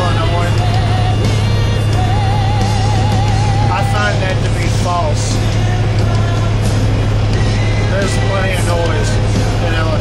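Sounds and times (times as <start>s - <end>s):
heavy metal music: 0.0s - 10.0s
man singing along: 0.0s - 10.0s
road noise: 0.0s - 10.0s
truck engine drone: 0.0s - 10.0s.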